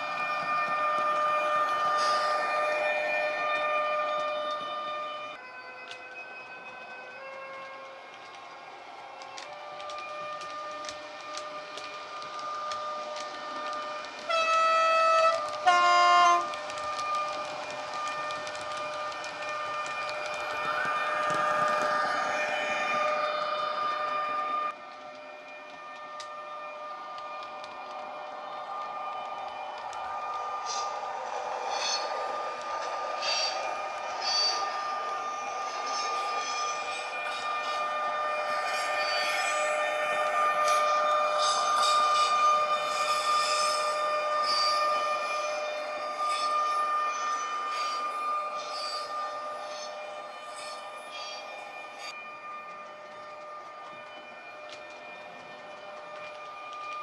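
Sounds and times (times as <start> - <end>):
electric locomotive traction whine: 0.0 - 57.0
model train wheels clicking on track: 9.2 - 22.2
train horn blasts: 12.4 - 17.3.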